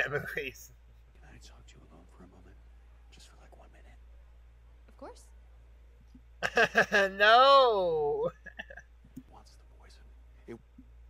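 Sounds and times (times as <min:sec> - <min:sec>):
hushed whispered dialogue: 0:00.0 - 0:04.3, 0:08.2 - 0:10.9
low steady hum: 0:00.0 - 0:11.0.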